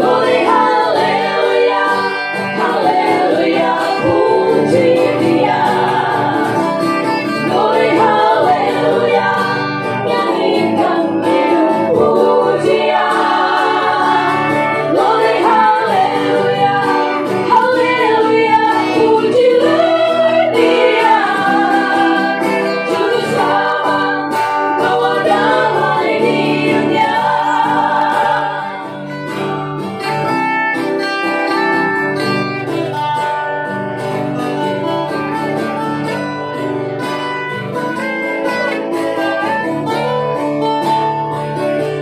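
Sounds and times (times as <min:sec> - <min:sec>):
women's group singing gospel: 0:00.0 - 0:29.2
strummed acoustic guitars: 0:00.0 - 0:42.0.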